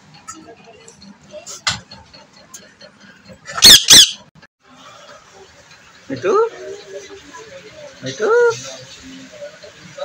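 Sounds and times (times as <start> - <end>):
parakeet talking in shrill syllables: 3.6 - 4.2
parakeet chirp: 3.6 - 4.3.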